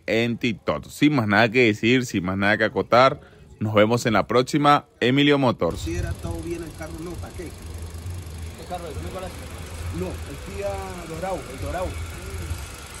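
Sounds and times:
car engine idling: 0:05.7 - 0:13.0.

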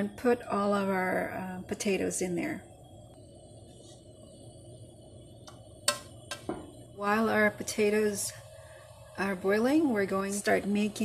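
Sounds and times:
water heating low rumble: 0:00.0 - 0:11.0.

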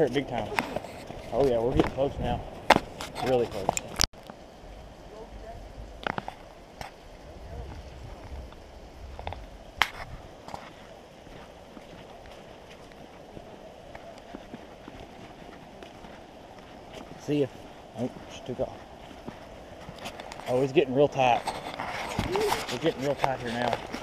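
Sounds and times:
footsteps on dirt trail: 0:00.0 - 0:04.0, 0:06.0 - 0:24.0.

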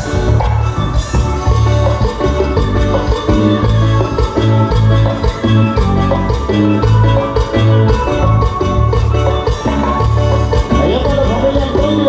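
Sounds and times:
amplified instrumental dance music: 0:00.0 - 0:12.0.

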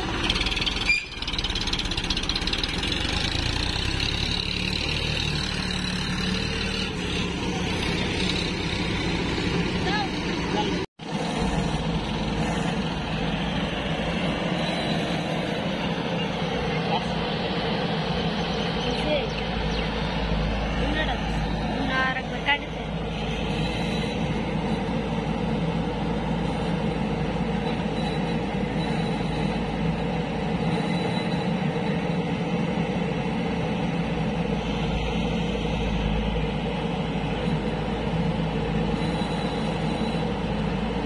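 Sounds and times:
diesel engines running: 0:00.0 - 0:41.0.

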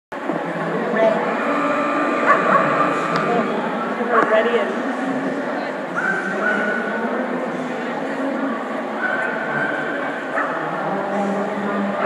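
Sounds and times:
crowd chatter in large hall: 0:00.1 - 0:12.0
dog barking: 0:09.0 - 0:09.8.

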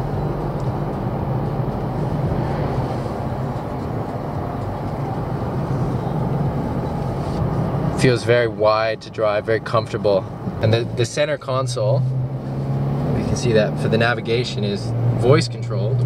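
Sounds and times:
diesel engine humming: 0:00.0 - 0:16.0
road and tyre noise: 0:00.0 - 0:16.0.

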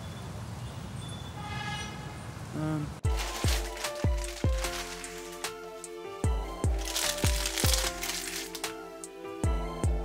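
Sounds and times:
music with deep kick drums: 0:03.0 - 0:08.1, 0:09.4 - 0:10.0
plastic wrapper crinkling: 0:03.1 - 0:05.6, 0:06.7 - 0:08.8.

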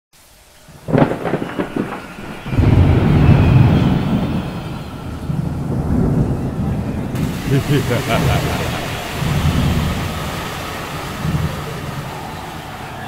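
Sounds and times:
deep rolling thunder rumble: 0:00.6 - 0:13.0
sharp crackling thunder clap: 0:00.6 - 0:13.0.

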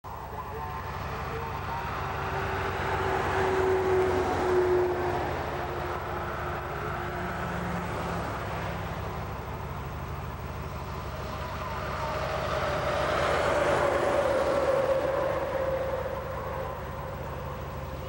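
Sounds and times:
highway traffic: 0:00.0 - 0:18.0
vehicle passing by: 0:00.5 - 0:18.0.

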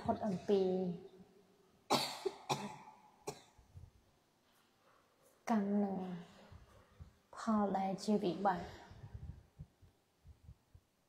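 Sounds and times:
woman speaking: 0:00.0 - 0:01.2, 0:05.5 - 0:06.5, 0:07.3 - 0:09.2
person coughing: 0:01.9 - 0:03.6.

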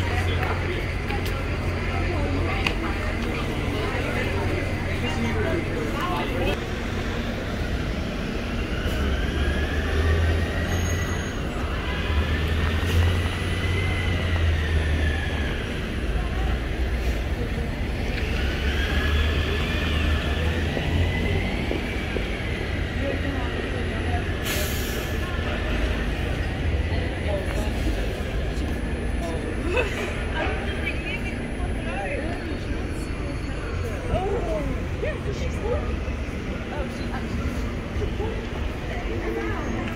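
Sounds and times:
bus engine rumble: 0:00.0 - 0:39.9.

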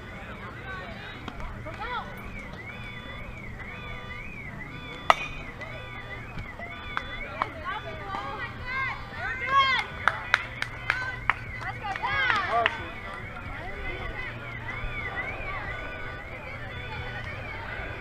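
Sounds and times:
bat hitting ball: 0:04.2 - 0:06.0
hands clapping: 0:06.9 - 0:08.4, 0:09.4 - 0:13.2.

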